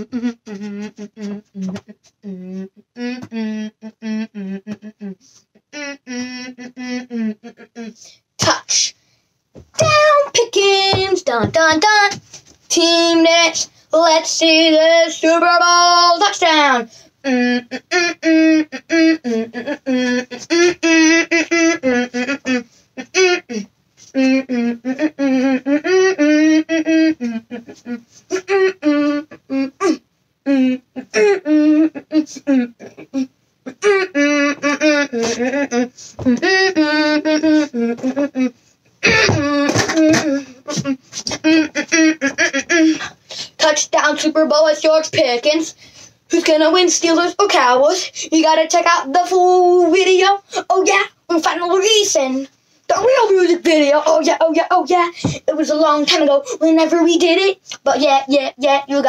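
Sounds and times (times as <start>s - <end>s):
boy laughing: 0.0s - 1.9s, 18.4s - 23.2s, 32.8s - 38.5s, 39.1s - 43.2s
boy humming: 0.0s - 8.9s, 12.8s - 44.7s
boy speaking: 7.8s - 9.0s, 9.8s - 16.9s, 42.8s - 59.0s.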